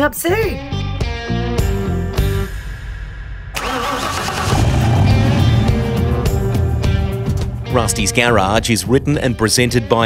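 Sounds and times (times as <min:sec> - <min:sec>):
car engine starting: 0:03.6 - 0:08.2.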